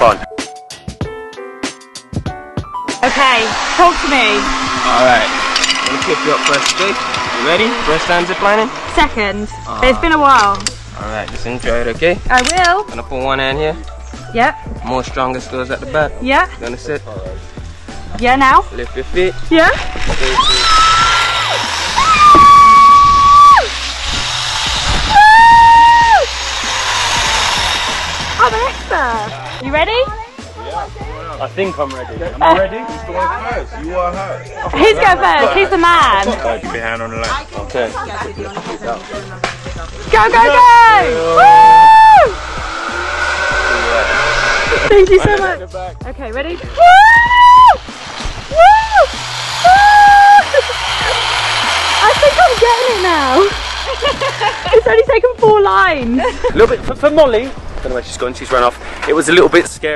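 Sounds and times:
zipline pulley rushing on cable: 0:03.0 - 0:10.6, 0:18.6 - 0:30.5, 0:39.0 - 0:45.5, 0:46.5 - 0:55.0
wind rushing on microphone: 0:22.2 - 0:26.1
person screaming: 0:41.2 - 0:42.4, 0:48.5 - 0:50.7
person crying woo: 0:48.6 - 0:50.7.

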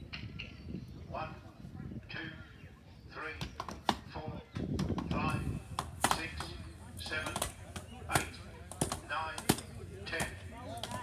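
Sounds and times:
axe chopping wooden logs: 0:05.8 - 0:11.0.

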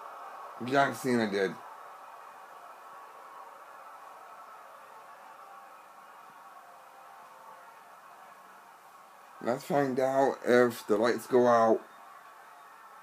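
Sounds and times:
room tone hiss and hum: 0:00.0 - 0:13.0.

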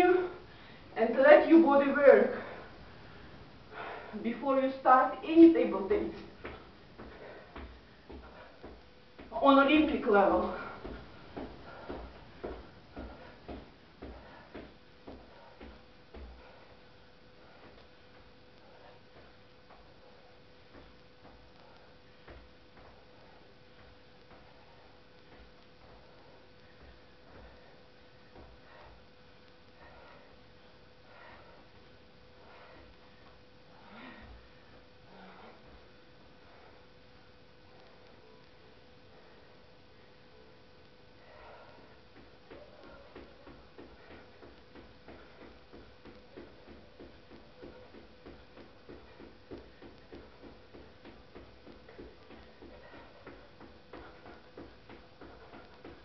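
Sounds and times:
faint steady hum: 0:00.0 - 0:56.0
sneaker footsteps on rug: 0:05.9 - 0:16.7, 0:17.4 - 0:27.7, 0:41.2 - 0:56.0.

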